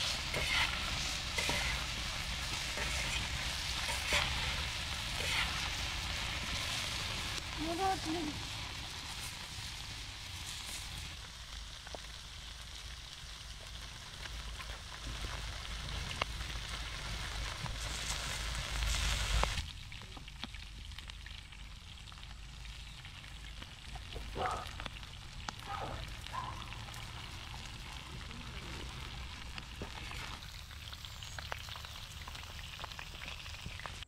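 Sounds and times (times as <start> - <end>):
fire crackling: 0.0 - 34.0
shrimp sizzling in a pan: 0.0 - 34.0.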